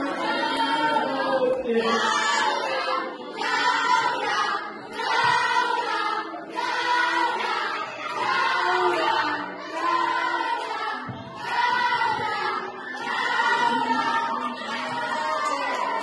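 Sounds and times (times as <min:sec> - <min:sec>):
children singing together: 0:00.0 - 0:16.0.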